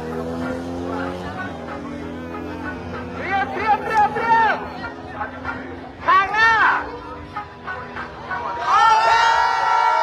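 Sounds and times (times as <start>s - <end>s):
vehicle engine running: 0.0s - 8.8s.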